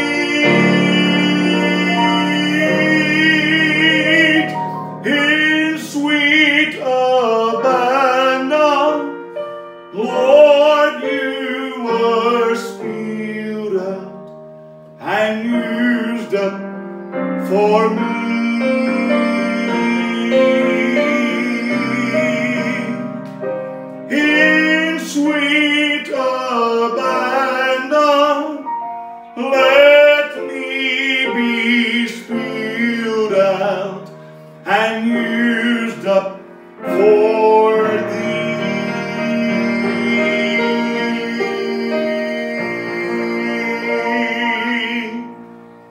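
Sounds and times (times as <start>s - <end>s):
man singing slow song: 0.0s - 45.6s
digital piano chords: 0.0s - 45.9s.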